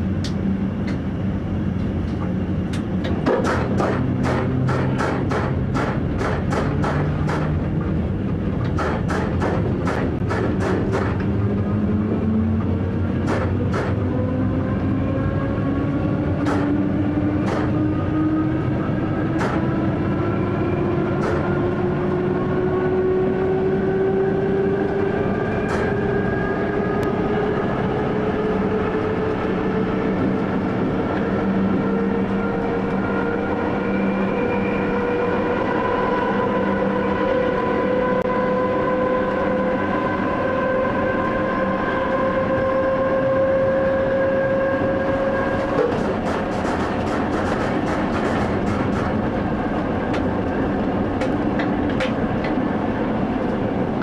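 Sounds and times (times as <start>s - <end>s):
electric train motor whine: 0.0s - 54.0s
wheels rumbling on track: 0.0s - 54.0s.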